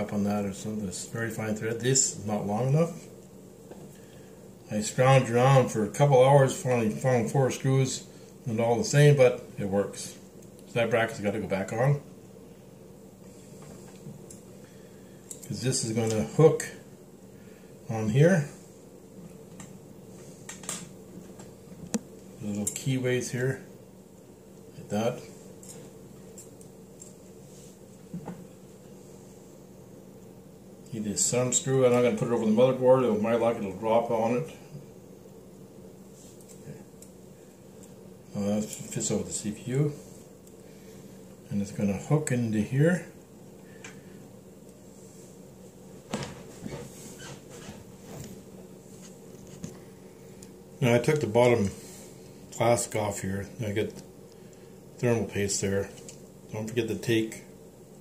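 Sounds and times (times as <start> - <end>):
low steady hum: 0.0 - 58.0.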